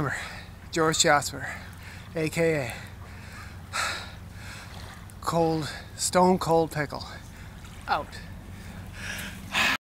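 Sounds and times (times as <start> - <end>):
man breathing sharply: 2.8 - 4.8, 8.5 - 9.8.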